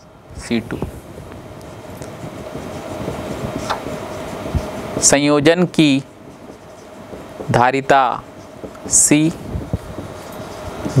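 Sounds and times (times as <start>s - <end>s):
background rumble and hiss: 0.0s - 11.0s
faint steady hum: 0.0s - 11.0s.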